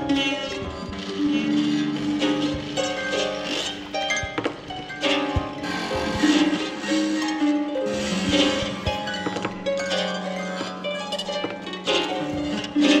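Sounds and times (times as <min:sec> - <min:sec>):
harp plucked notes: 0:00.0 - 0:13.0.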